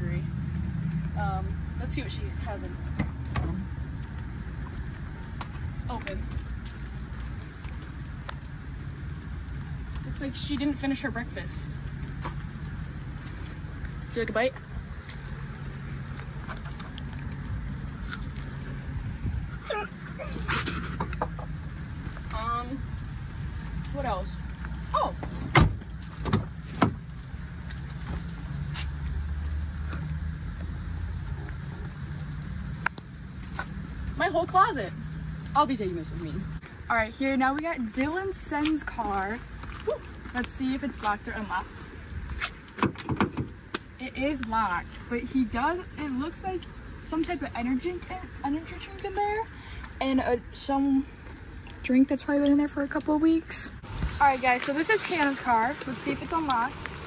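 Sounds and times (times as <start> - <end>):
low outdoor rumble: 0.0 - 57.0
woman laughing: 19.6 - 21.2.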